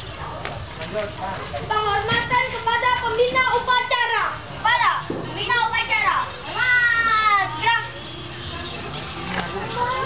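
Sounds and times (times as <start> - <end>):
children calling and shouting: 1.4 - 10.0.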